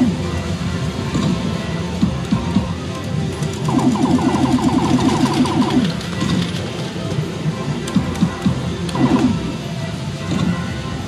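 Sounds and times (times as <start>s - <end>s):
music: 0.0s - 11.0s
slot machine sounds: 3.3s - 7.0s, 8.8s - 9.6s.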